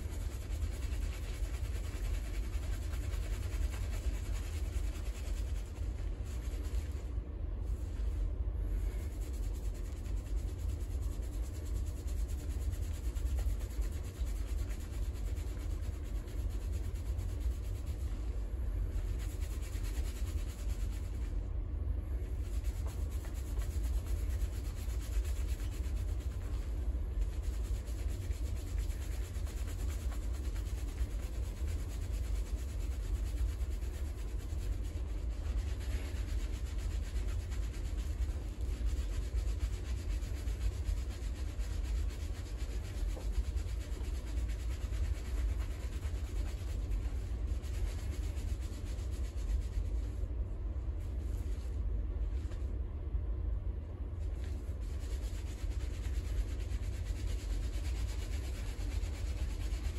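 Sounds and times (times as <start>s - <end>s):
fingers rubbing lathered hair: 0.0s - 21.5s, 22.2s - 52.7s, 54.2s - 59.9s.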